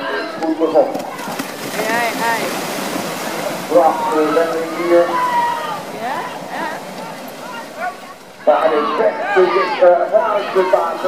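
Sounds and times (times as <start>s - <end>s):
people talking: 0.0s - 2.6s, 3.2s - 11.0s
horses and carriage splashing water: 0.0s - 11.0s.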